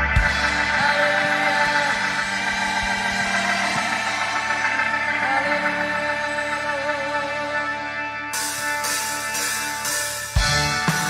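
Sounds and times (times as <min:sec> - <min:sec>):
organ sustained chords: 0:00.0 - 0:11.0.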